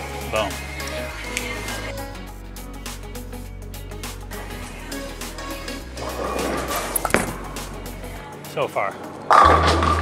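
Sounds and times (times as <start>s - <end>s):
background music: 0.0s - 10.0s
bowling ball knocking on lane: 6.8s - 7.7s.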